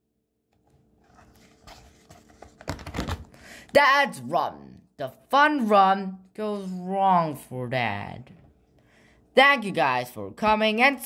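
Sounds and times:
book pages rustling: 0.6s - 3.3s.

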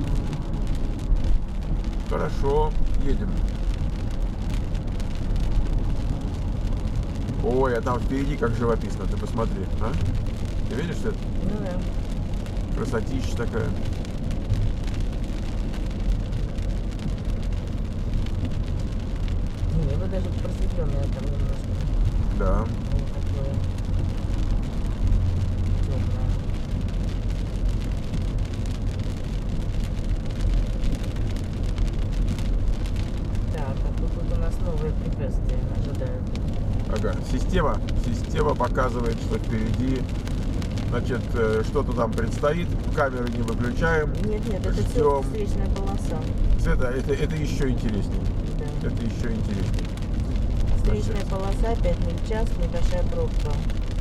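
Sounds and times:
car road noise on wet pavement: 0.0s - 54.0s.

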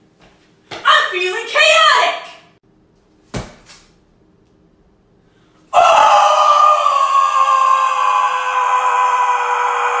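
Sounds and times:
person yelling high-pitched: 0.9s - 2.4s.

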